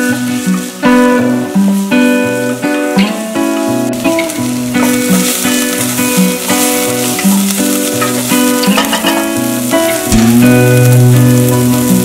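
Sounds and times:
acoustic guitar music: 0:00.0 - 0:12.0
onions sizzling in oil: 0:00.0 - 0:12.0.

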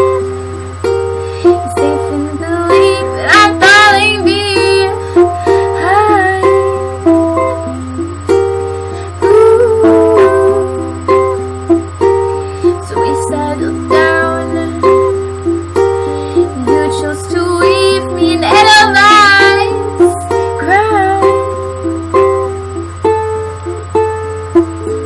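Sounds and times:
steady low hum: 0:00.0 - 0:25.0
ukulele plucked notes and chords: 0:00.0 - 0:25.0
woman singing: 0:01.4 - 0:08.4, 0:09.1 - 0:11.4, 0:12.7 - 0:15.2, 0:16.4 - 0:21.5.

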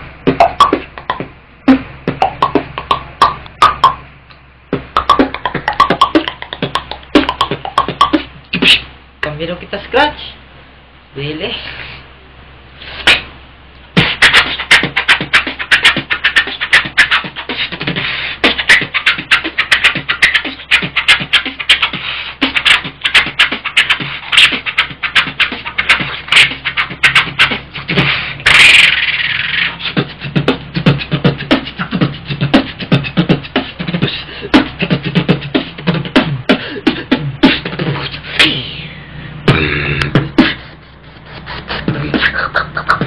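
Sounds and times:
beatboxing: 0:00.0 - 0:09.3, 0:12.8 - 0:43.0.

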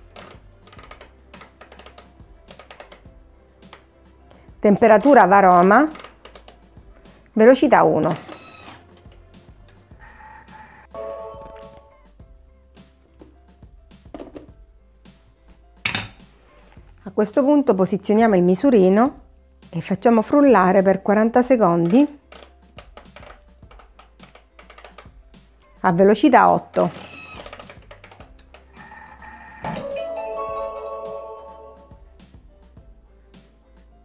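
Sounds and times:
quiet background music: 0:00.0 - 0:34.0.

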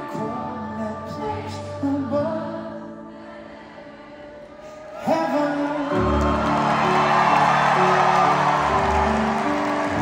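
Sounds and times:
live band sustained chords: 0:04.2 - 0:10.0
audience cheering: 0:04.9 - 0:10.0.

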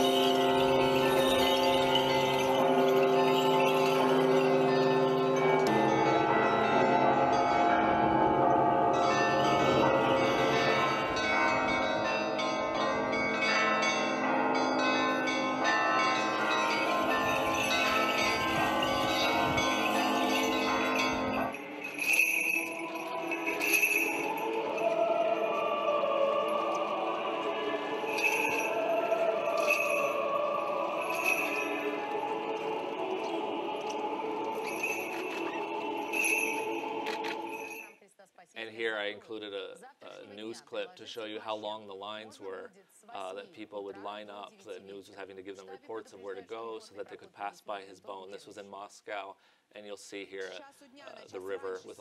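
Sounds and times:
church bells ringing: 0:00.0 - 0:37.9.

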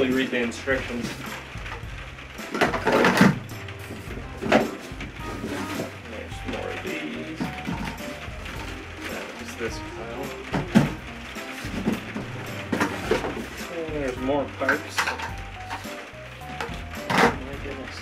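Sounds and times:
background music with bass line: 0:00.0 - 0:18.0
plastic pipes clattering: 0:00.0 - 0:18.0.

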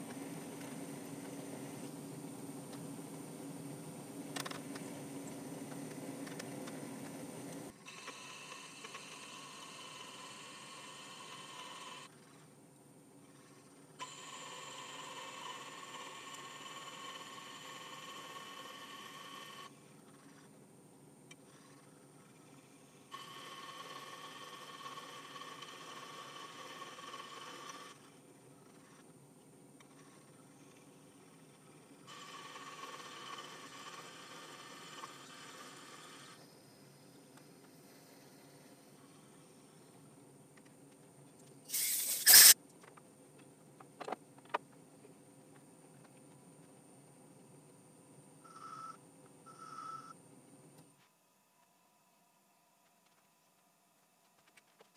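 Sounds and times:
drill cutting metal whine: 0:07.9 - 0:12.1, 0:14.0 - 0:19.7.

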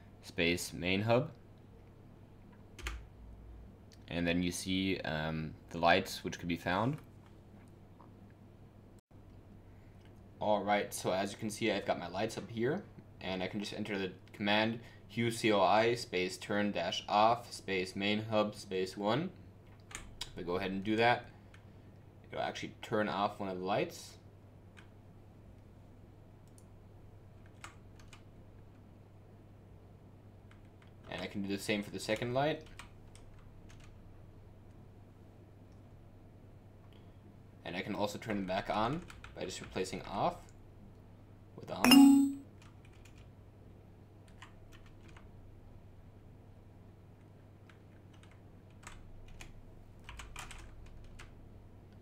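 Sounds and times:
typing on a computer keyboard: 0:02.8 - 0:03.0, 0:27.4 - 0:28.3, 0:32.6 - 0:34.0, 0:38.9 - 0:39.8, 0:42.0 - 0:43.3, 0:44.2 - 0:45.3, 0:47.6 - 0:51.4
keyboard key presses: 0:50.1 - 0:51.2.

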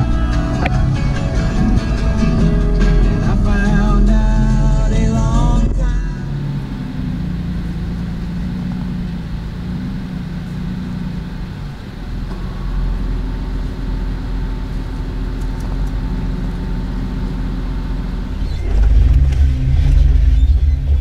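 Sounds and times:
vehicle engine rumbling: 0:00.0 - 0:21.0.

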